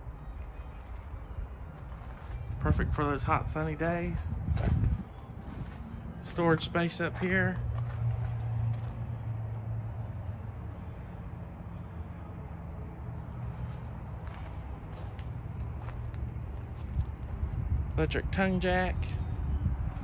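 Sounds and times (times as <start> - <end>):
low mechanical rumble: 0.0 - 20.0.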